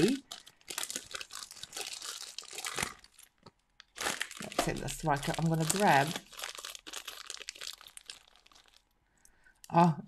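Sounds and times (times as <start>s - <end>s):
crinkling and rustling with clicks: 0.0s - 9.8s.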